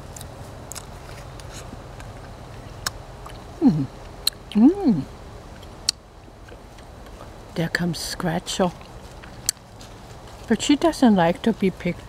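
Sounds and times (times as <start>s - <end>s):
person chewing: 0.0s - 4.8s
low background rumble: 0.0s - 12.0s.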